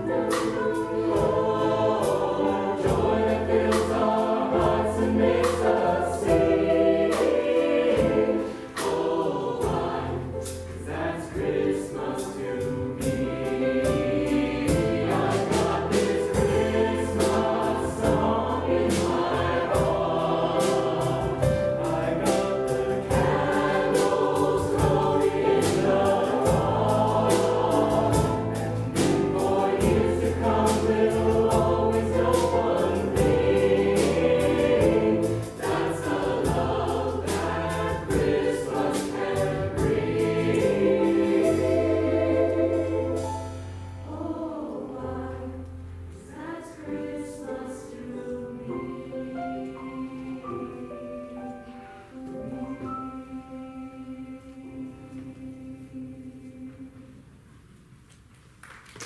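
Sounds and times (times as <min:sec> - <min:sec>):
mixed choir singing: 0:00.0 - 0:57.4
drums steady beat: 0:13.0 - 0:42.1.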